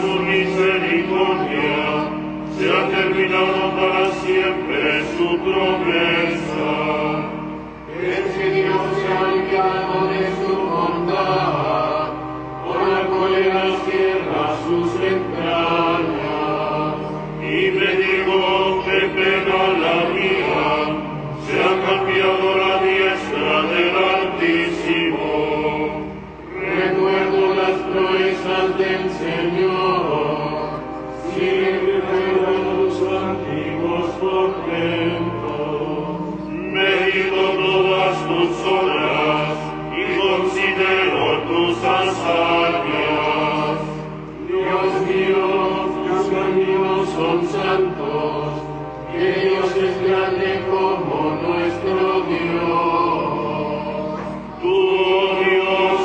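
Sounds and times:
liturgical chant: 0.0 - 56.0.

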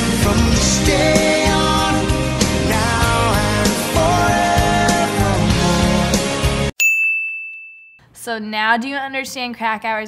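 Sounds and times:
music playing: 0.0 - 6.7
bright bell-like ding: 6.8 - 8.1.

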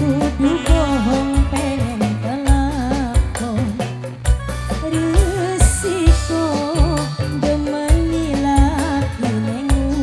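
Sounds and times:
keyboard: 0.0 - 10.0
woman singing through microphone: 0.0 - 10.0.

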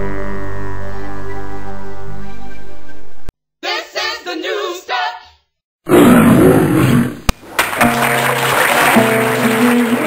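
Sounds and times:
voices: 3.6 - 5.3.

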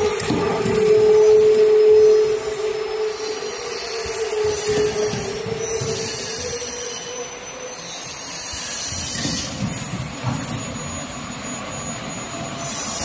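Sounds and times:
machine clatter and hum: 0.0 - 7.4, 8.0 - 13.0.

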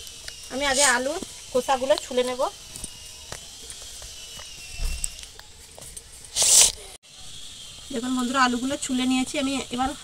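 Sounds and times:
potato peeling scrape: 0.5 - 2.1, 6.3 - 6.9.

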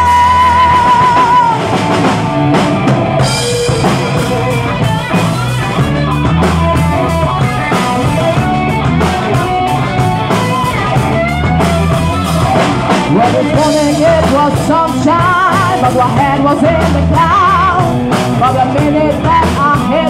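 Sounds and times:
drum kit steady beat: 0.0 - 20.0
electric guitars: 0.0 - 20.0.

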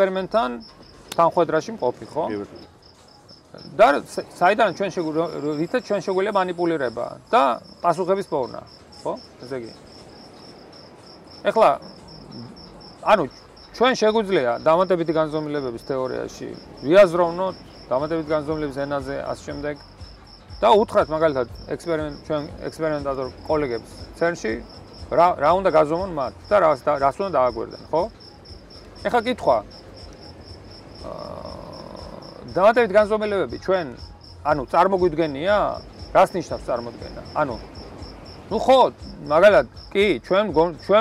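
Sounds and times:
crickets chirping: 0.0 - 41.0.

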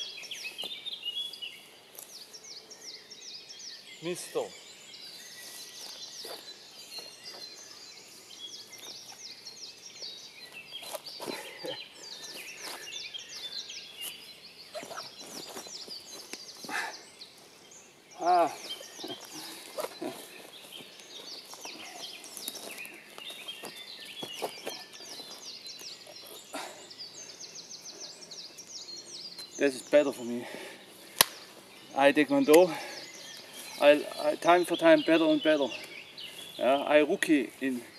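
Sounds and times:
songbirds chirping and singing: 0.0 - 37.9.

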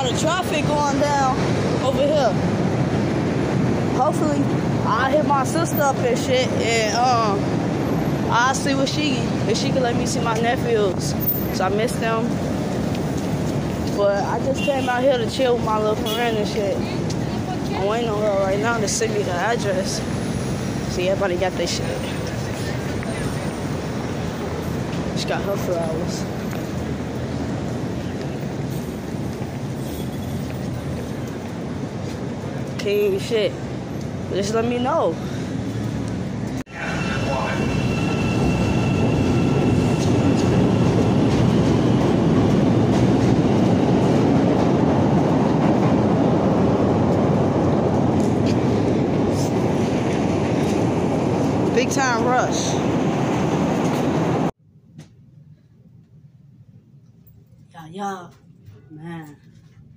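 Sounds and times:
elevated train running: 0.0 - 54.5
low rumble of street traffic: 0.0 - 59.9.

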